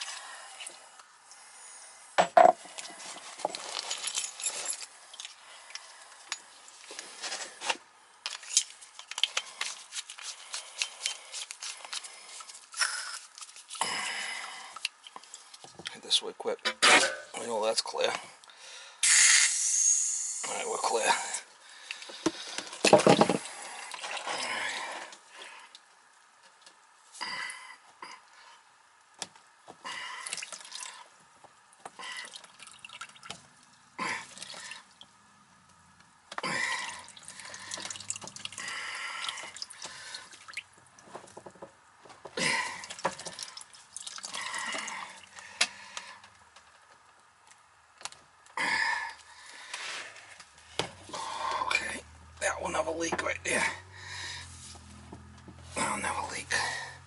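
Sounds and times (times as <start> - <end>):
burst of air through pipe: 19.0 - 20.7
water dripping into plastic pan: 29.2 - 35.2, 36.0 - 47.1.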